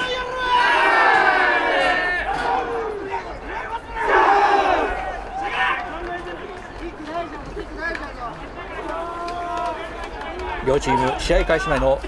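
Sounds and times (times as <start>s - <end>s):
players shouting together: 0.0s - 6.3s.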